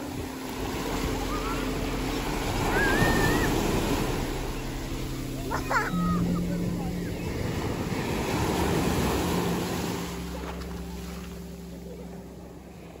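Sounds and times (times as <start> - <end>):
sea surf breaking: 0.0 - 13.0.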